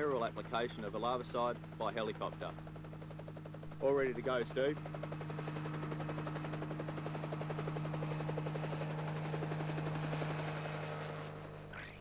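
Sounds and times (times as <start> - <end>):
helicopter engine hum: 0.0 - 12.0
helicopter rotor beat: 0.0 - 12.0.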